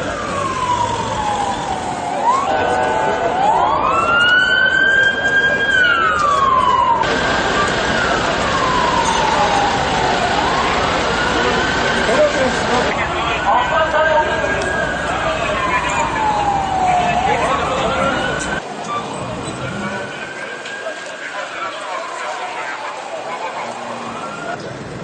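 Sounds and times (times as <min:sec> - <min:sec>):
emergency siren wailing: 0:00.0 - 0:24.6
crowd noise: 0:00.0 - 0:25.0.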